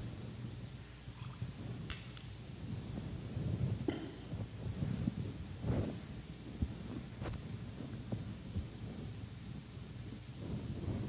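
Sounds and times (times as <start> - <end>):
low room hum: 0.0 - 11.0
light metal clink: 1.8 - 2.4.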